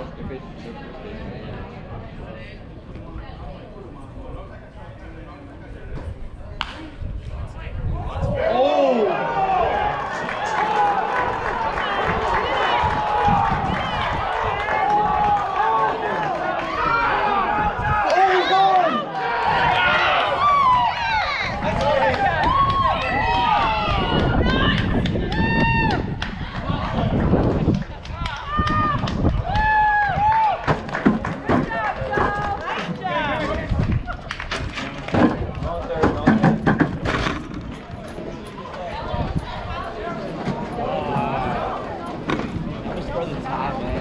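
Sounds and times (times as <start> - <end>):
people talking and calling out: 0.0 - 44.0
people shouting and yelling: 6.6 - 44.0.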